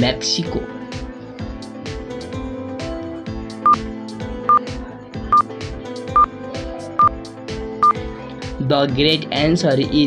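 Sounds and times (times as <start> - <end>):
background music with steady beat: 0.0 - 10.0
countdown timer beeps: 3.6 - 3.8.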